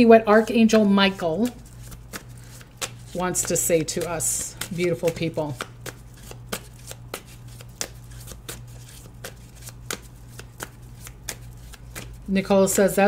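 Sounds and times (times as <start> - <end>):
people talking: 0.0 - 1.6, 3.2 - 5.6, 12.3 - 13.0
cards being shuffled: 1.1 - 12.8.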